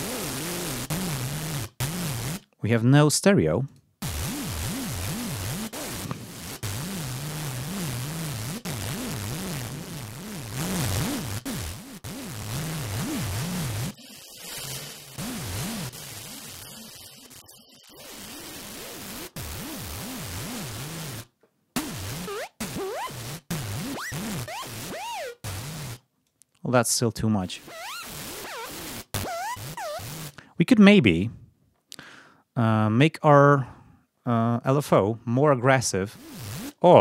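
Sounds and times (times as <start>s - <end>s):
distorted synthesizer buzz: 0.0s - 2.4s, 4.0s - 26.0s, 27.6s - 30.4s.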